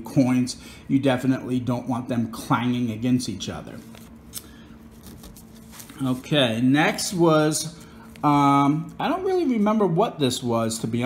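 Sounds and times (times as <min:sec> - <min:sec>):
paper rustling and crinkling: 0:03.6 - 0:04.2, 0:04.8 - 0:07.1
small sharp paper crackles: 0:03.7 - 0:06.4.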